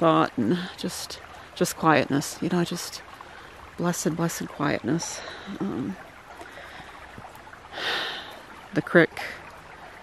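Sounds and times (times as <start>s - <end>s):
creek water babbling: 0.0s - 10.0s.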